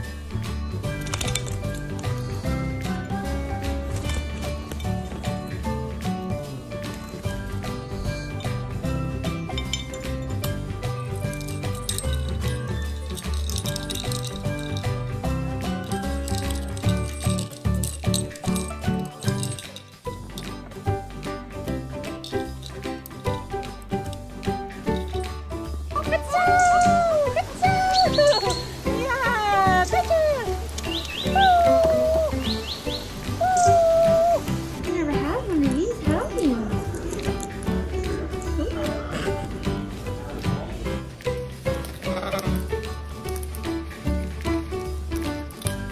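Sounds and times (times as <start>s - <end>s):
upbeat background music: 0.0s - 45.9s
low wavering bird calls: 26.5s - 34.5s.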